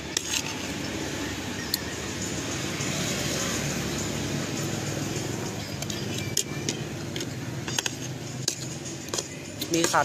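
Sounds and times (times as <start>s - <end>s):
motor vehicle passing: 0.0s - 9.5s.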